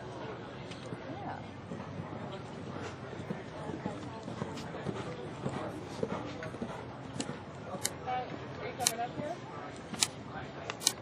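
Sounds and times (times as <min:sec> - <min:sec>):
people's voices: 0:00.0 - 0:11.0
horse hoofbeats on sand: 0:00.9 - 0:09.4.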